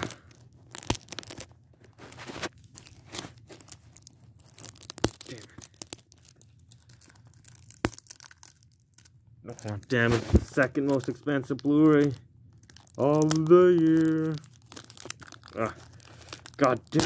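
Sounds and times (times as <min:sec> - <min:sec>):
wrapping tearing and crinkling: 0:00.0 - 0:17.0.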